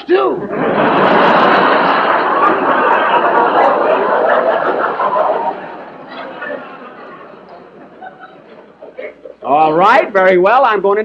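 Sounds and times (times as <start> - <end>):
audience laughing: 0.4 - 9.5.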